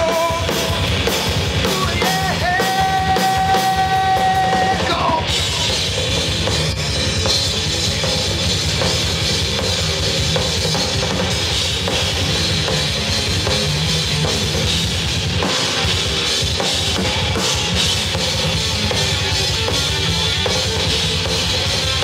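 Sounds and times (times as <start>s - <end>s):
heavy metal band playing: 0.0s - 22.0s
rapid bass drum beats: 0.0s - 22.0s.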